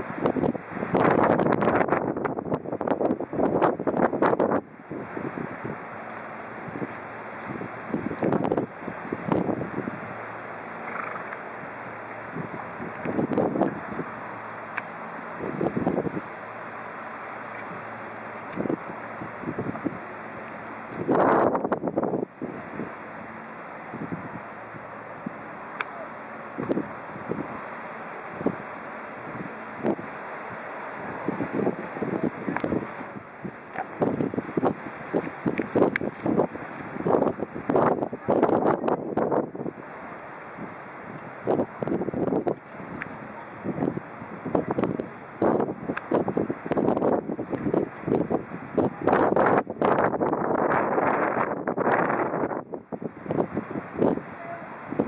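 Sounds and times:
wind buffeting microphone: 0.0s - 16.7s, 17.4s - 23.2s, 23.8s - 25.5s, 26.5s - 55.0s.

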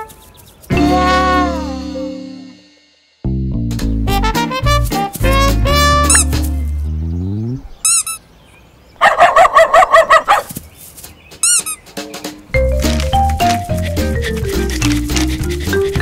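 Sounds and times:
cartoon music: 0.7s - 2.6s, 3.8s - 6.8s, 12.5s - 16.0s
cartoon bird chirps: 7.3s - 8.2s, 11.4s - 11.8s.

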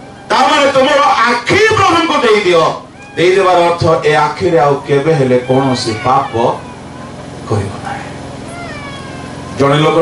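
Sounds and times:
man preaching into a microphone: 0.3s - 6.6s.

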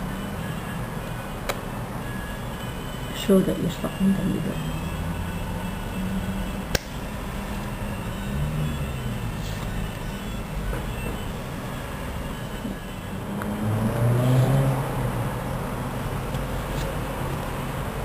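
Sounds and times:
sharp click: 6.7s - 7.0s.

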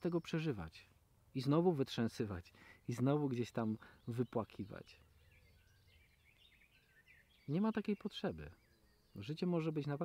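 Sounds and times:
distant bird chirps: 0.0s - 10.0s.

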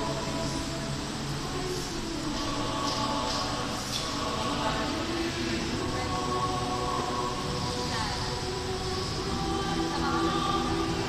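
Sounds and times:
choir holding a chord: 0.0s - 11.0s.

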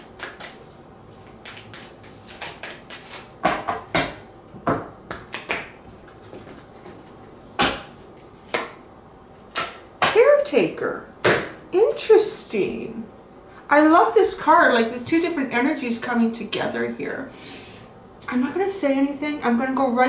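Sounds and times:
cards slapping and tapping: 0.0s - 0.6s, 1.2s - 8.8s.

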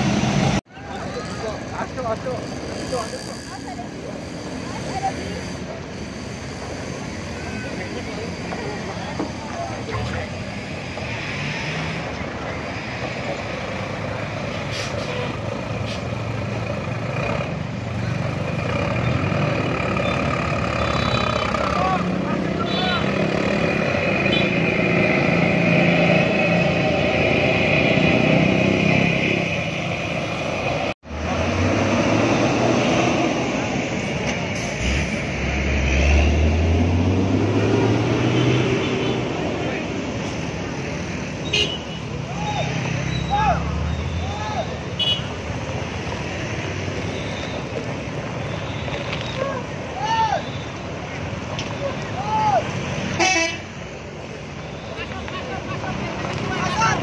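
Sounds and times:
diesel bus engines running: 0.0s - 57.0s
bus engine revving up: 9.9s - 41.2s.

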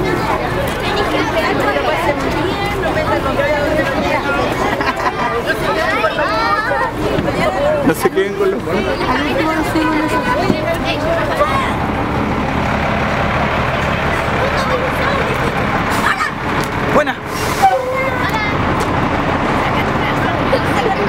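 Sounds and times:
bus engine idling: 0.0s - 21.0s
girls chattering: 0.0s - 21.0s.

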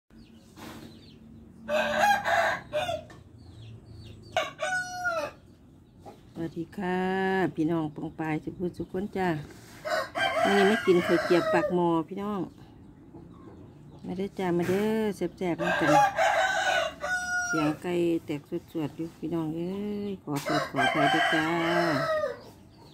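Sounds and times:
rooster crowing: 1.7s - 3.1s, 9.8s - 11.8s, 15.6s - 17.8s, 20.5s - 22.4s.

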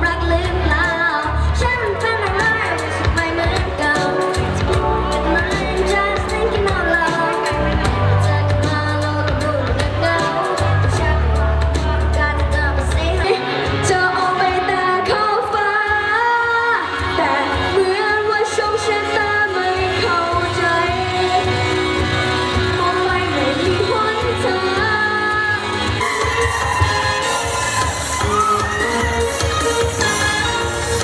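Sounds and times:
backing track with beat and bass: 0.0s - 31.0s
person singing pop song: 0.0s - 31.0s.

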